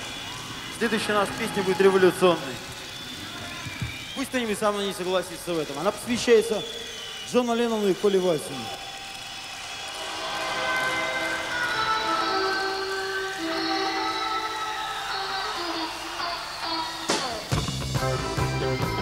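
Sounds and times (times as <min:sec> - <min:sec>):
live rock band playing: 0:17.1 - 0:19.0
sustained guitar chords: 0:17.5 - 0:19.0.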